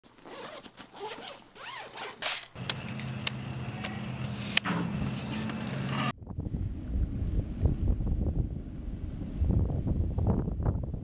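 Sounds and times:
bag zipper pulled open: 0.2s - 2.5s.

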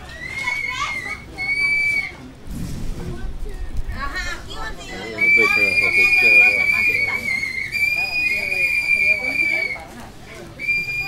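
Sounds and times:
jumble of voices: 0.0s - 11.0s
high whistle-like tone: 0.3s - 2.2s, 5.1s - 9.8s, 10.6s - 11.0s.

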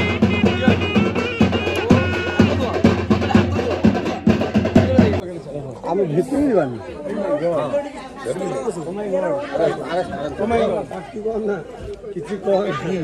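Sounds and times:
drum music: 0.0s - 5.2s
overlapping chatter: 0.0s - 13.0s.

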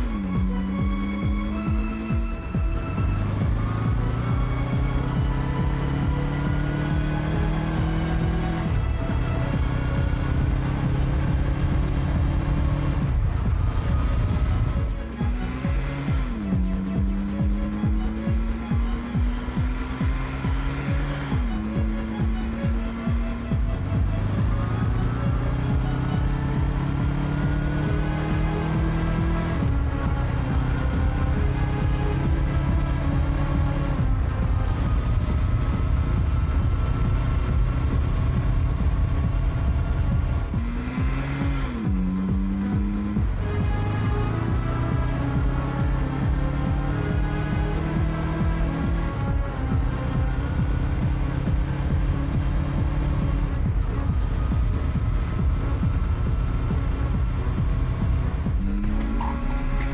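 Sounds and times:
background music: 0.0s - 59.9s.

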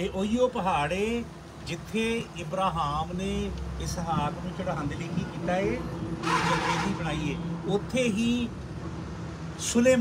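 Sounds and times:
man speaking forcefully: 0.0s - 8.5s.

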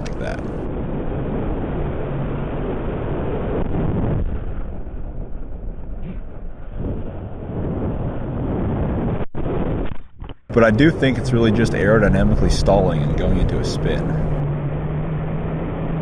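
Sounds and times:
wind rushing over microphone: 0.0s - 9.9s, 10.5s - 16.0s.

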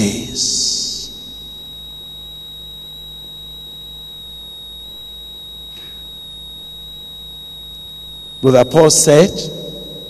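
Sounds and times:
high-pitched electronic whine: 0.0s - 10.0s
low electrical hum: 0.0s - 10.0s.

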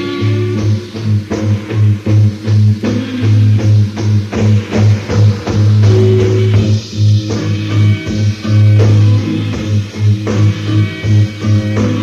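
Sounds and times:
blues-rock band playing: 0.0s - 12.0s
drums: 0.0s - 12.0s
low guitar and bass riff: 0.0s - 12.0s.

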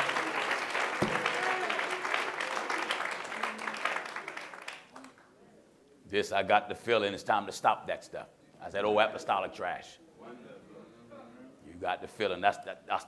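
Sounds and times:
congregation applauding: 0.0s - 5.2s.

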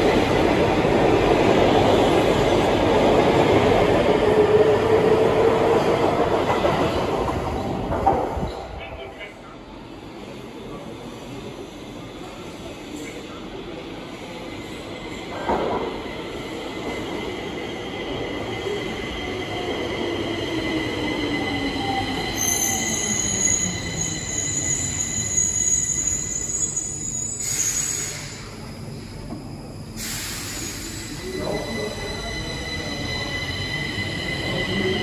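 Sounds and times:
high wheel squeal: 21.1s - 28.5s.

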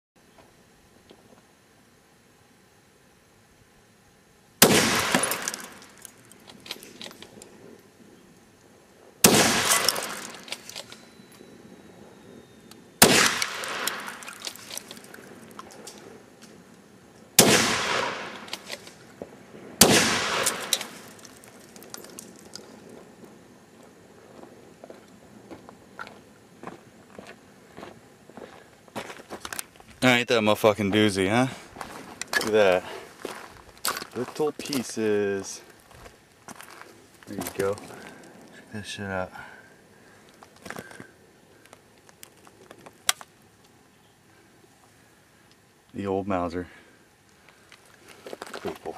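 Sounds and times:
rifle shots echoing: 4.6s - 6.0s, 9.2s - 10.8s, 13.0s - 14.9s, 17.4s - 18.8s, 19.8s - 21.3s.

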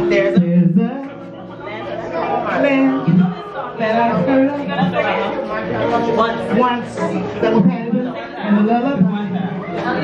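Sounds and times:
woman talking into microphone: 0.0s - 1.2s, 2.5s - 5.2s, 6.5s - 9.7s
voices chattering: 0.0s - 10.0s.

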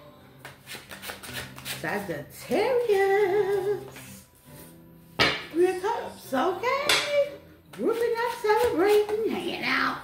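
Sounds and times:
person singing: 2.5s - 4.2s.

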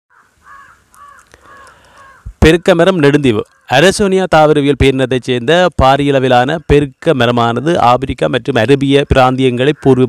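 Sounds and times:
bird calling: 0.1s - 3.8s.

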